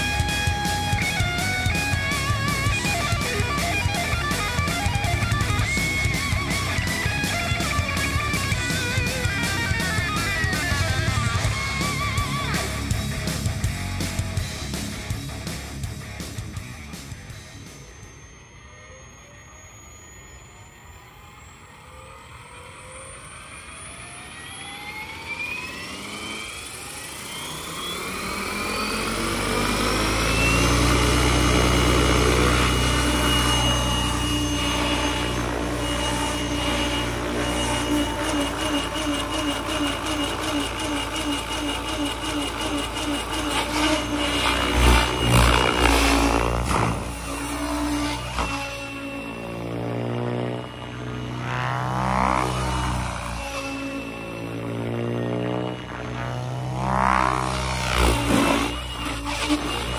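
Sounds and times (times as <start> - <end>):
rc helicopter motor whine: 0.0 - 59.9
rotor blade noise: 0.0 - 59.9.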